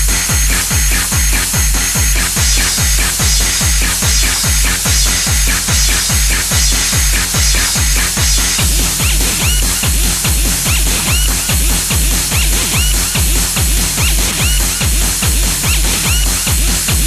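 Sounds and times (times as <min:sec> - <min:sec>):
high synth blips: 0:00.0 - 0:16.5
techno kick drum: 0:00.0 - 0:17.0.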